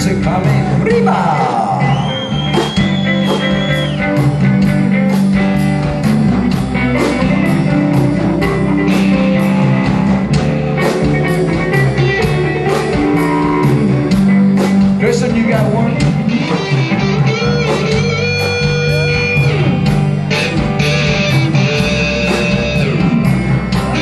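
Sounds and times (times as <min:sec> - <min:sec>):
bass guitar: 0:00.0 - 0:24.0
steady drum beat: 0:00.0 - 0:24.0
electric guitar solo: 0:01.0 - 0:24.0.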